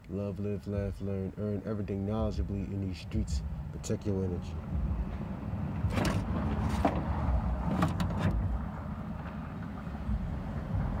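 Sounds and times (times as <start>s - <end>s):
steady low rumble: 0.3s - 11.0s
car door window mechanism clicks: 5.8s - 8.5s.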